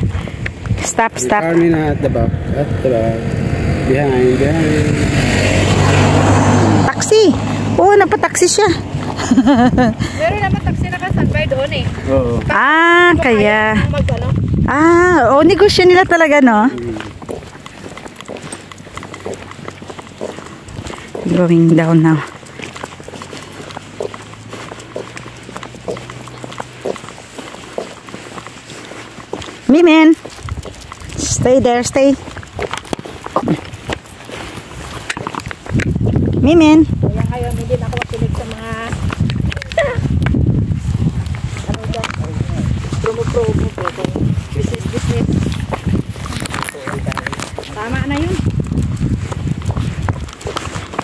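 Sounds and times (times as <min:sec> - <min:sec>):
footsteps on tarmac: 0:00.0 - 0:51.0
car driving past: 0:01.4 - 0:09.3.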